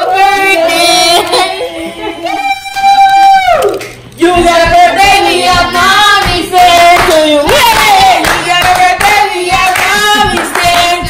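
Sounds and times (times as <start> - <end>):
group singing: 0.0 - 2.4, 4.2 - 11.0
people clapping along: 3.8 - 11.0.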